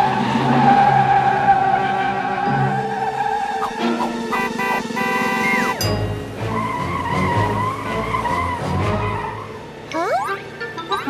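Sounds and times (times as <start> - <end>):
background music: 0.0 - 11.0
cartoon fire truck skidding: 0.0 - 11.0.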